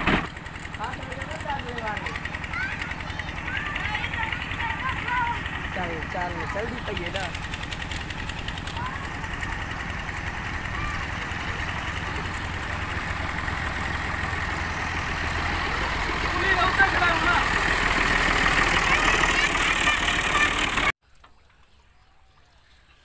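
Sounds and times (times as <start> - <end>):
tractor diesel engine rumbling: 0.0 - 21.6.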